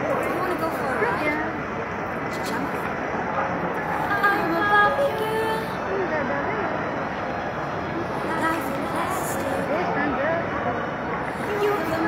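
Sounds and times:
faint indistinct voices: 0.0 - 12.0
steady background din: 0.0 - 12.0.

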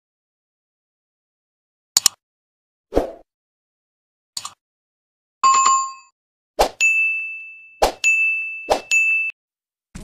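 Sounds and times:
notification bell dings: 5.4 - 6.1, 6.8 - 9.4.

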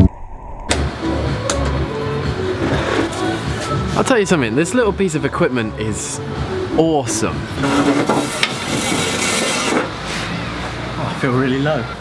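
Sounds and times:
vehicle engine humming: 0.6 - 12.0
background music: 0.7 - 12.0.

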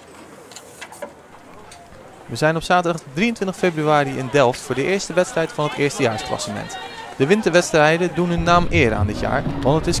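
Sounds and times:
distant voices: 1.2 - 10.0.

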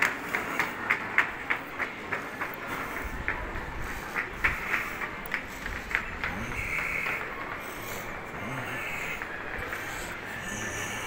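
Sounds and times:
footsteps on cobblestones: 0.0 - 11.0.

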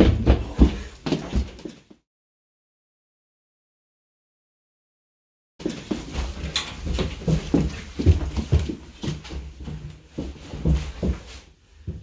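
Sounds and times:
footsteps thudding on staircase: 0.0 - 1.9, 5.6 - 12.0.

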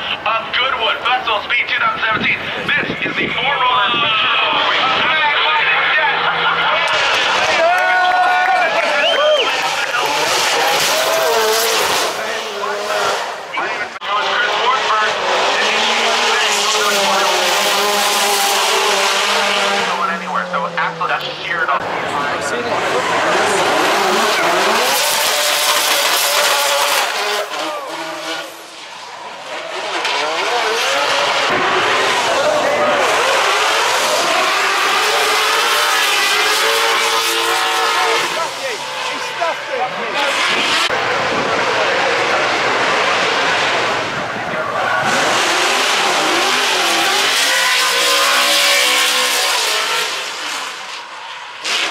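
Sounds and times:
car engines revving hard: 0.0 - 51.9.

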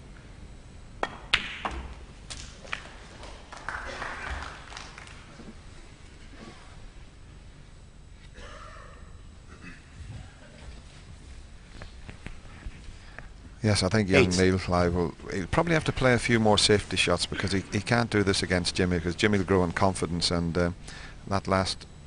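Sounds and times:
snooker balls cracking together: 1.0 - 5.6.

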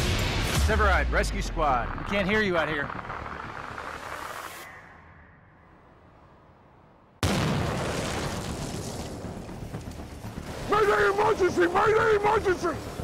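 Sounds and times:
low rumble: 0.0 - 13.0
explosion with deep boom: 7.2 - 9.7.

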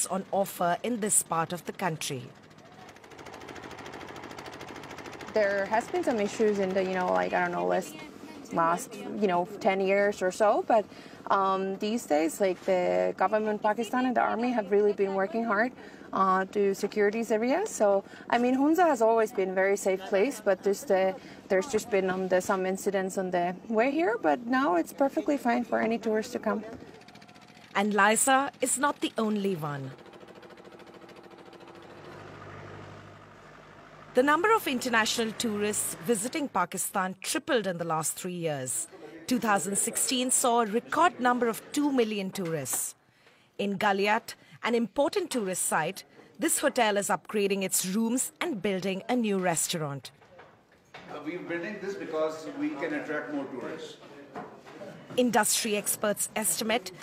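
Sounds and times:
motor running with fast rattle: 0.2 - 7.9, 26.4 - 36.4.

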